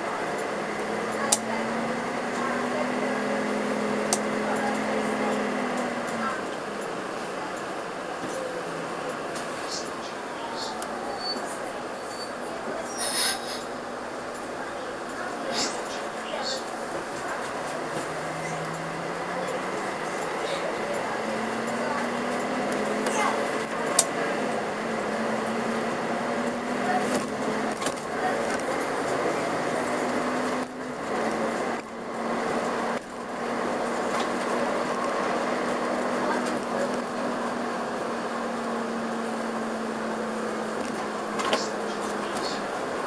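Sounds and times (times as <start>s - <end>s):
bus engine drone: 0.0s - 43.0s.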